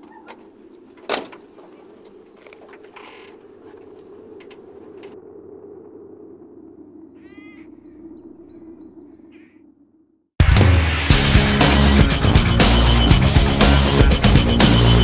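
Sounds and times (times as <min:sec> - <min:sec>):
crow cawing: 0:02.4 - 0:05.1, 0:07.2 - 0:07.8, 0:09.3 - 0:09.6.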